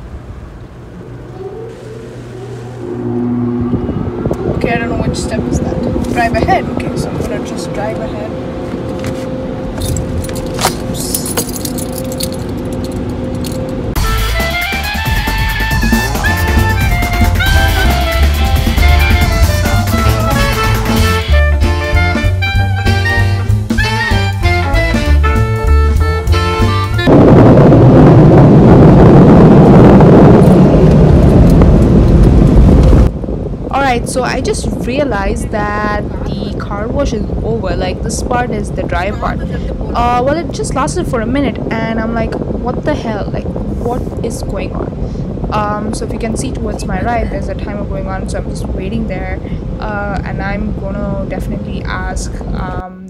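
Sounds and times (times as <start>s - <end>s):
car wash machinery hum: 0.0s - 23.9s
jazz music: 13.9s - 28.1s.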